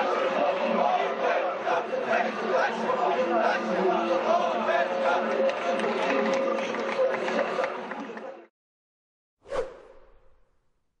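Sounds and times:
whoosh swish: 9.4 - 10.6.

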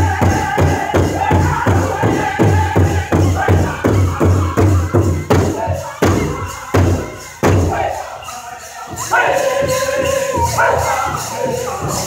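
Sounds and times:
big drum booming beats: 0.0 - 8.0.

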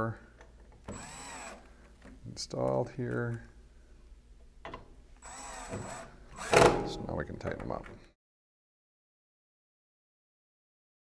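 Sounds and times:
cordless drill driving screw: 0.8 - 1.7, 5.2 - 6.8.

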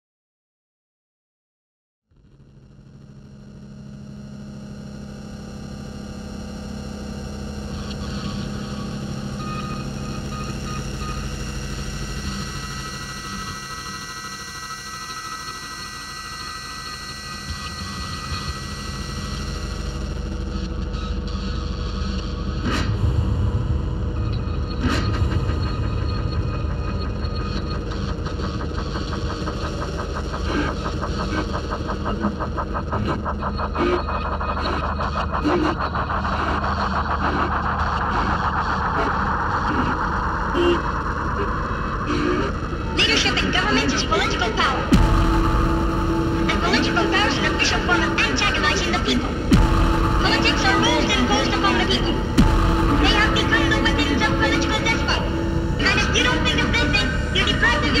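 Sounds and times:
low drone with held tones: 3.0 - 58.0
fast rattling pulse: 24.1 - 58.0
sharp hits: 49.2 - 58.0.

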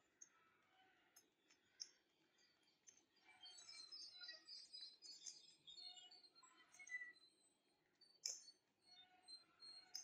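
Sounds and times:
faint high bird chirps: 0.1 - 10.0.

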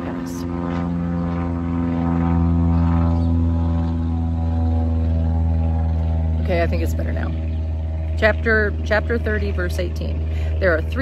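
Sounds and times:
airplane flying past: 0.0 - 11.0.

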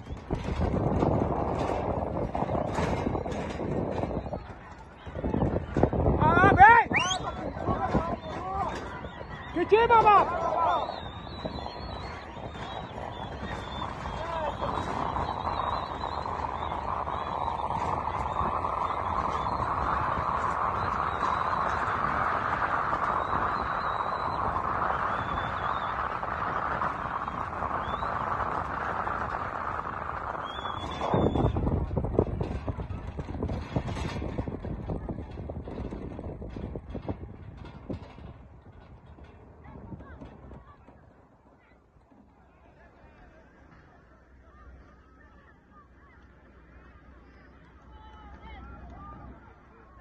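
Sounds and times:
horses galloping: 0.0 - 43.9
wind rumble on microphone: 0.0 - 50.0
crowd shouting and cheering: 4.1 - 28.0.

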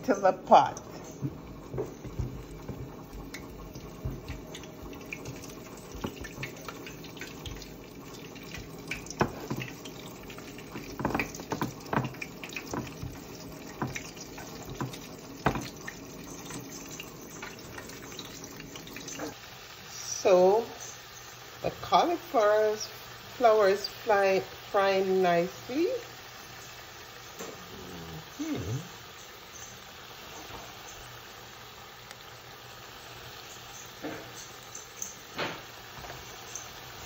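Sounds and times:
food deep-frying in oil: 0.0 - 37.0.

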